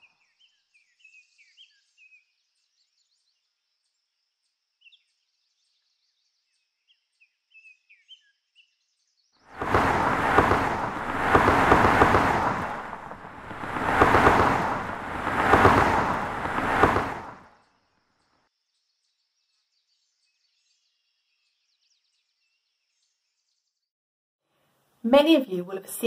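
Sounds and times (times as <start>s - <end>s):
road traffic rushing: 9.6s - 17.4s.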